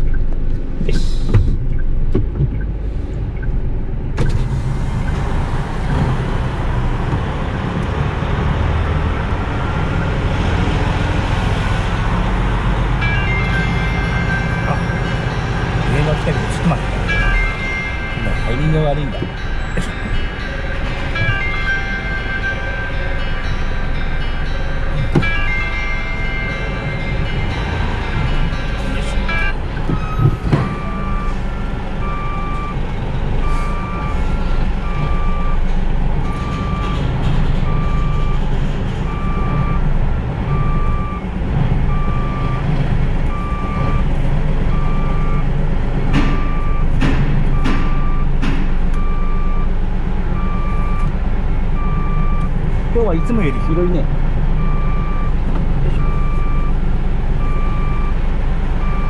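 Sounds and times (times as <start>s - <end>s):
diesel engine running: 0.0s - 59.0s
changing musical tones: 9.2s - 49.7s
reversing alarm beeping: 13.0s - 39.9s, 40.5s - 42.7s, 43.3s - 49.8s, 50.4s - 59.0s.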